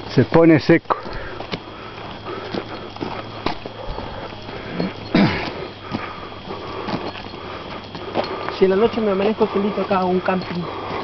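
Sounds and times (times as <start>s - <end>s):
footsteps on dirt road: 0.0s - 11.0s.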